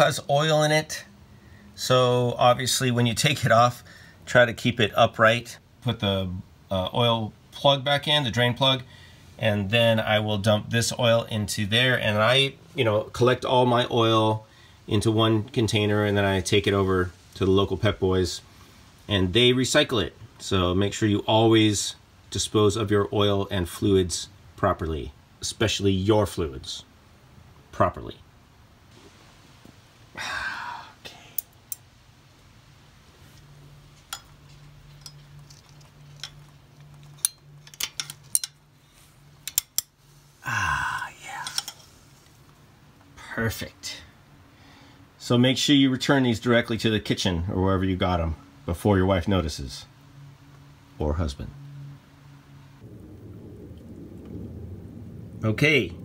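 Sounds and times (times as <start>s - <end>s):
clicks and clinks of tools: 34.1s - 38.6s
low voice: 40.4s - 41.7s.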